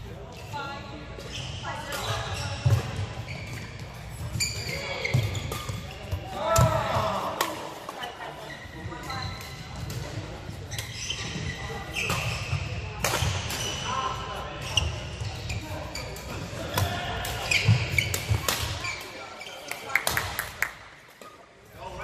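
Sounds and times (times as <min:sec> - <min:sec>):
players' voices: 0:00.0 - 0:22.0
sneakers squeaking on court floor: 0:00.3 - 0:07.2, 0:08.0 - 0:19.8
rackets hitting shuttlecock: 0:04.6 - 0:08.0, 0:12.0 - 0:13.8, 0:16.2 - 0:19.0.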